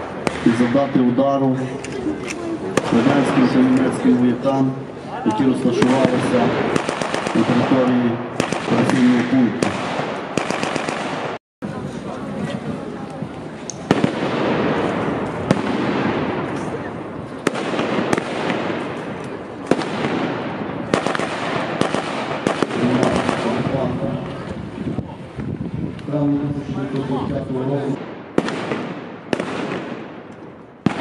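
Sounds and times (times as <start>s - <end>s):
gunshots and bursts: 0.0s - 1.1s, 5.7s - 11.4s, 13.8s - 16.6s, 17.4s - 24.0s, 28.0s - 31.0s
murmur of voices: 0.0s - 9.6s, 11.6s - 21.2s, 22.4s - 28.0s.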